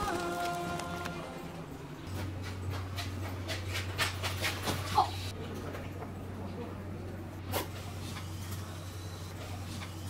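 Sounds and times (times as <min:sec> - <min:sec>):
low steady hum: 0:00.0 - 0:03.6.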